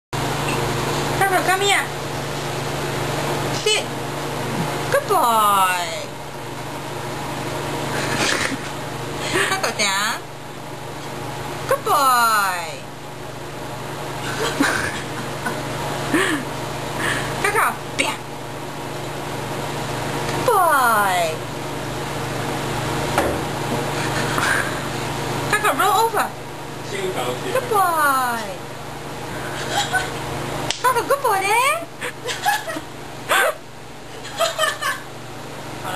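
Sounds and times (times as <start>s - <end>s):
steady low hum: 0.2s - 35.9s.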